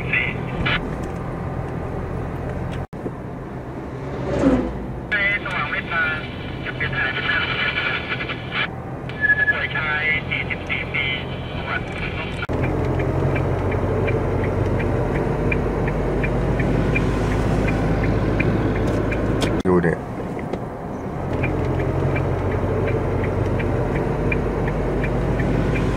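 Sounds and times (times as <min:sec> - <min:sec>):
voices in car: 0:00.0 - 0:00.8, 0:05.1 - 0:12.5, 0:19.4 - 0:20.6
car road noise: 0:00.0 - 0:25.9.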